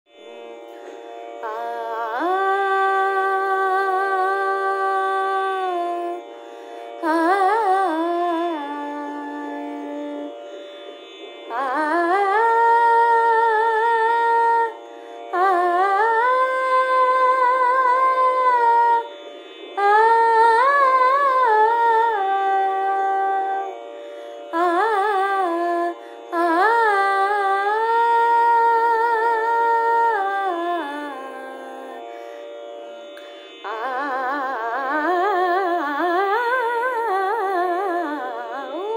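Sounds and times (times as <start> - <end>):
woman singing long wordless note: 1.4 - 6.2, 6.8 - 10.4, 11.5 - 19.1, 19.8 - 23.8, 24.5 - 32.2, 33.6 - 38.9.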